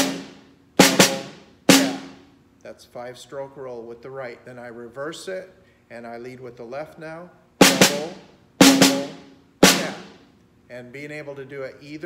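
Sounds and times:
snare drum struck with sticks: 0.0 - 2.2, 7.6 - 10.2.

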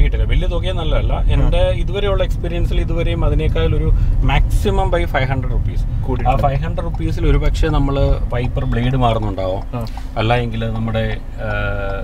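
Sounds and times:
car cabin rumble: 0.0 - 12.0
man talking: 0.0 - 12.0.

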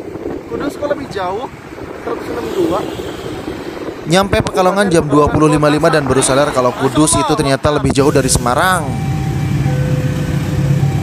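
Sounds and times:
motorcycle engines idling: 7.9 - 11.0.

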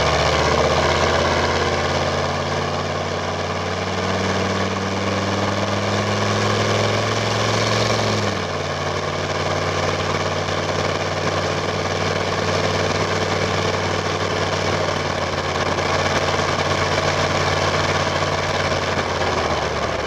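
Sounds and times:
diesel truck engine pulling hard: 0.0 - 20.0.

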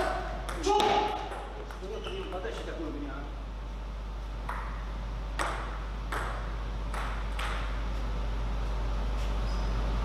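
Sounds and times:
table tennis ball bouncing: 0.0 - 2.7, 4.4 - 7.8
steady low hum: 0.0 - 10.0.

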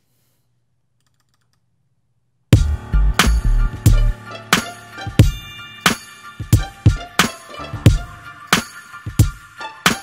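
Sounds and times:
hip-hop beat: 2.6 - 10.0.

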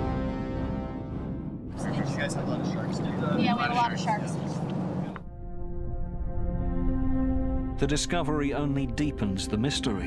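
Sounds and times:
wind: 1.7 - 5.3.

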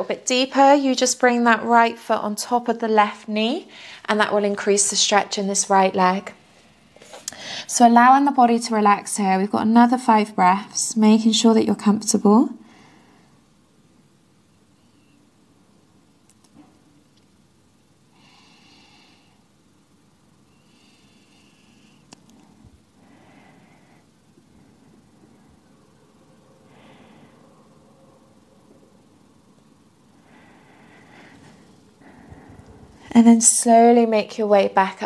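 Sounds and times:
faint room hum: 0.0 - 35.0
person breathing slowly: 18.1 - 19.5, 20.5 - 22.1, 22.8 - 25.5, 26.5 - 27.9, 30.0 - 33.1.

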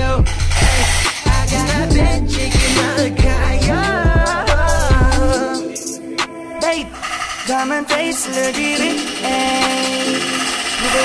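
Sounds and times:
background music with held notes: 0.0 - 11.0
pneumatic rivet gun rattling: 0.3 - 1.3.

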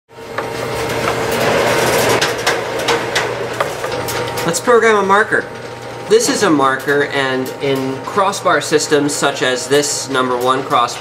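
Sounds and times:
steady hum and hiss: 0.2 - 11.0.

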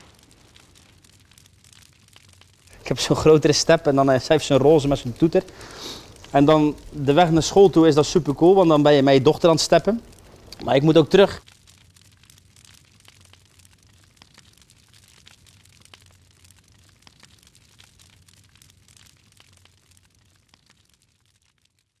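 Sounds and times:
wood fire crackling: 0.0 - 22.0.

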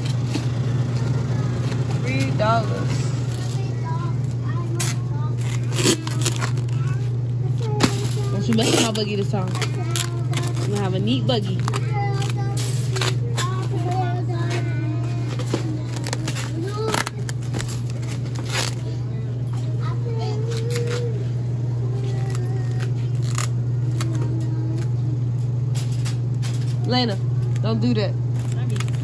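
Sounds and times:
steady low hum: 0.0 - 29.0
plastic wrap crinkling: 5.3 - 7.0, 8.0 - 13.2, 28.3 - 29.0.

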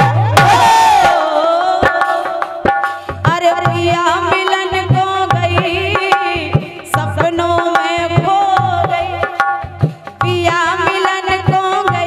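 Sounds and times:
dholak drum strikes: 0.0 - 12.0.

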